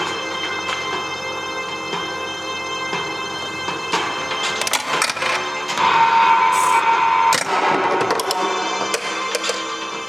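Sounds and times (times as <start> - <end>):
pinball machine music and effects: 0.0 - 10.0
held high tone: 6.0 - 7.3.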